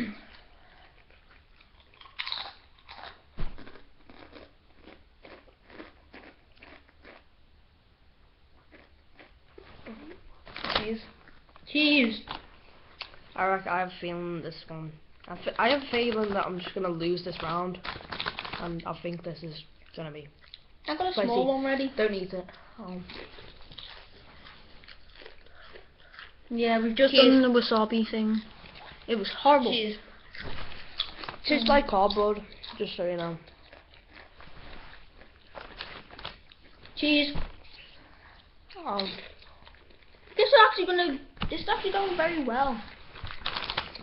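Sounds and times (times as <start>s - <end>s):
chewing: 0.1s - 7.3s, 8.6s - 13.3s, 17.3s - 19.2s, 19.8s - 21.4s, 22.5s - 37.0s, 37.6s - 40.6s
tortilla chip crunching: 0.8s - 7.3s, 17.3s - 18.8s, 23.1s - 26.4s, 30.2s - 36.8s, 43.1s - 44.0s.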